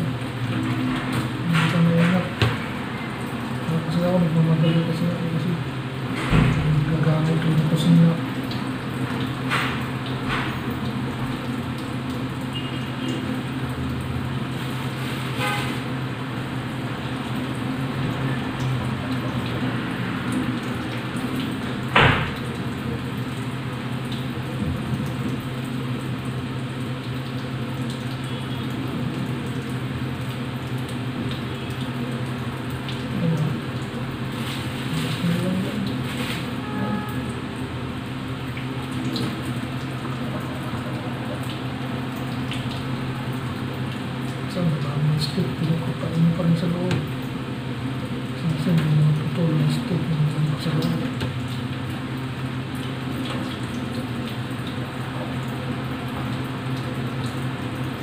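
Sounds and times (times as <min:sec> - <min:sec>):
low mechanical hum: 0:00.0 - 0:58.0.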